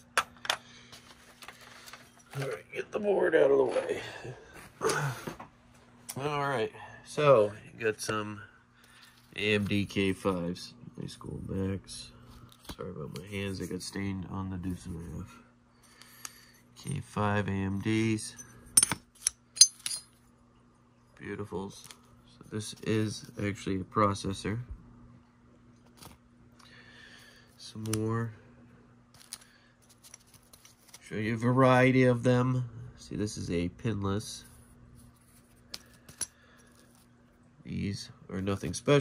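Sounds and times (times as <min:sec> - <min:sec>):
ceramic chips clinking: 0:18.8 - 0:20.2.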